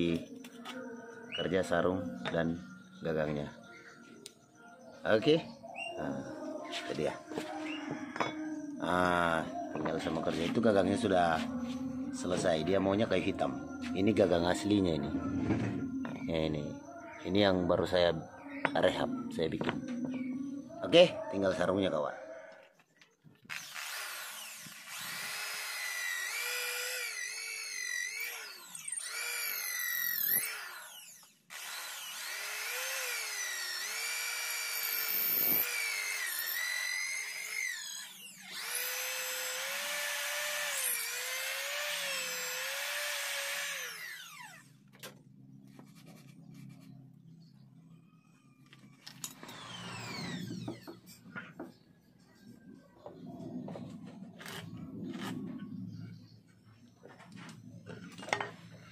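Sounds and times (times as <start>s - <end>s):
electric drill boring into wood: 23.5s - 44.8s, 49.0s - 51.2s
rubbing and handling sounds: 45.6s - 47.0s.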